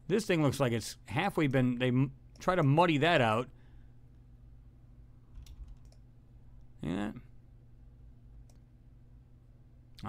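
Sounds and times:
low steady hum: 0.0s - 10.0s
computer mouse or key clicks: 5.4s - 6.0s.

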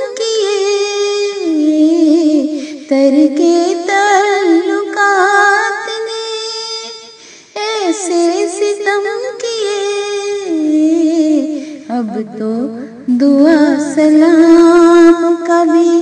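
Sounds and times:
woman singing slow melody: 0.0s - 16.0s.

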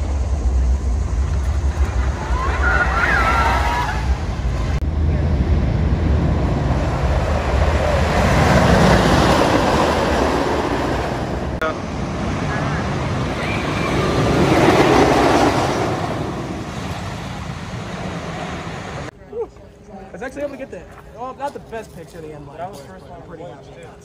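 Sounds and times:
roller coaster rumbling on wooden track: 0.0s - 19.1s
wind buffeting microphone: 0.0s - 19.1s.

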